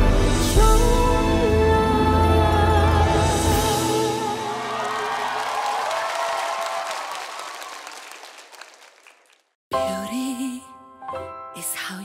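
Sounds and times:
audience applauding: 4.3 - 9.6.

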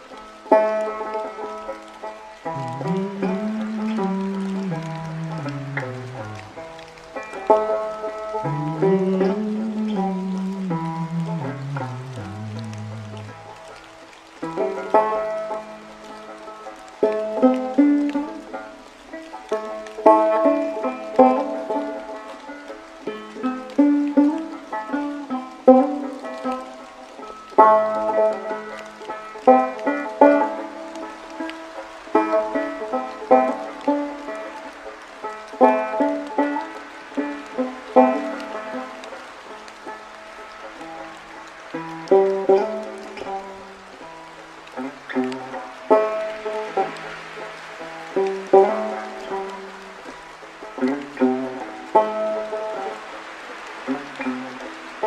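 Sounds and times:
banjo played slowly: 0.0 - 55.0
faint rain hiss: 0.0 - 55.0.

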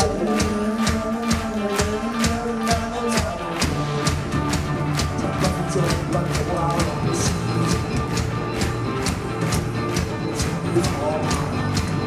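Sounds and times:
drums and cymbals: 0.0 - 12.0
electric guitars and bass: 0.0 - 12.0.

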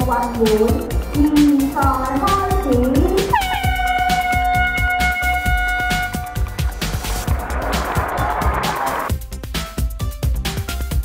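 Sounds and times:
music with steady beat over pa: 0.0 - 11.0
air horn blast: 3.3 - 9.0.

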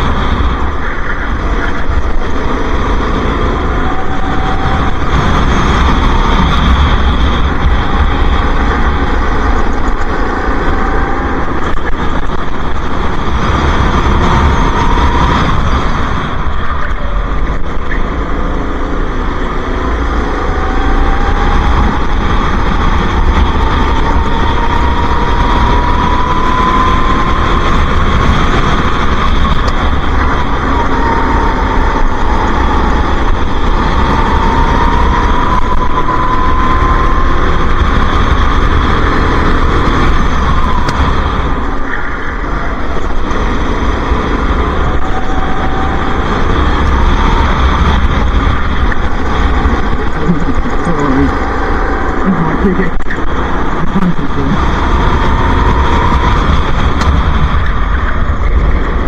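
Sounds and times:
go-kart engine racing: 0.0 - 59.0
wind rumble: 0.0 - 59.0.

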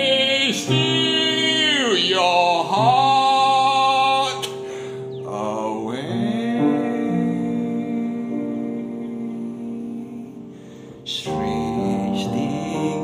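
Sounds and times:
man singing: 0.0 - 13.0
piano accompaniment: 0.0 - 13.0.

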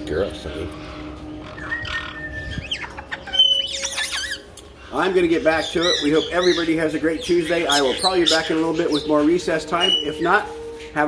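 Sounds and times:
parrots squawking and whistling: 0.0 - 11.0.

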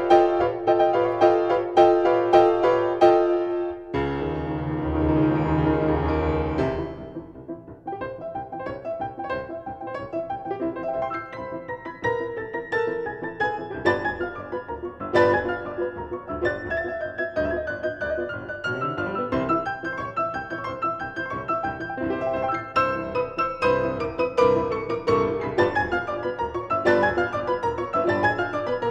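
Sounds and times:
piano duo playing classical piece: 0.0 - 28.9.

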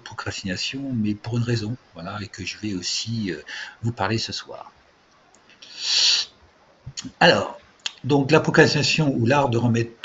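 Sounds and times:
loud breath drawn in: 5.6 - 6.3.

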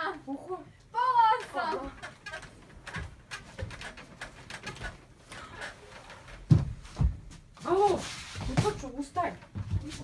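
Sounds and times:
wooden bunk bed creaking: 1.0 - 10.0
bedding rustling: 1.2 - 10.0.

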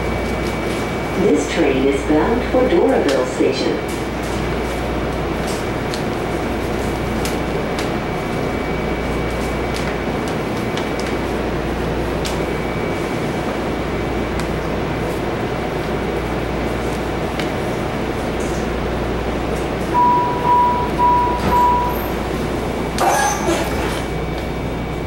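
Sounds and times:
rail car hum and rush: 0.0 - 25.0
door-closing warning beeps: 20.0 - 22.2.

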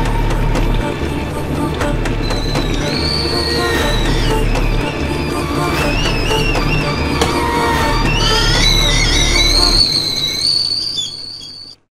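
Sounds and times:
low drone: 0.0 - 11.8
high whistle-like tones: 0.0 - 11.9.

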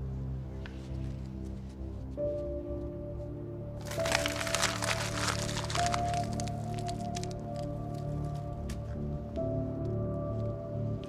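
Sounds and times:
background music: 0.0 - 11.0
parchment crumpling: 3.8 - 8.8.

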